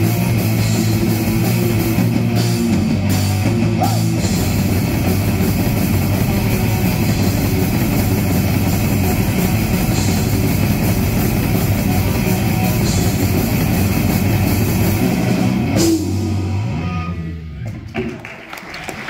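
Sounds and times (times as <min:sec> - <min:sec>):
heavy metal band playing: 0:00.0 - 0:17.5.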